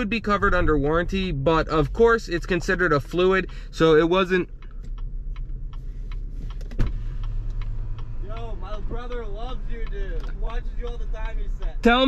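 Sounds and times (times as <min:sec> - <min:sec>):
low car cabin rumble: 0:00.0 - 0:12.0.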